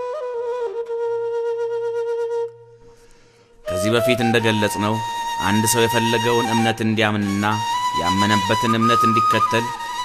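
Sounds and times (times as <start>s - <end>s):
flute long note: 0.0s - 3.0s, 3.6s - 10.0s.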